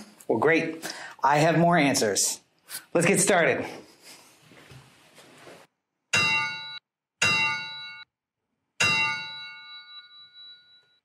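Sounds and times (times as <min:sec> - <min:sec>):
metallic bell ringing: 0:06.1 - 0:08.1, 0:08.8 - 0:11.0.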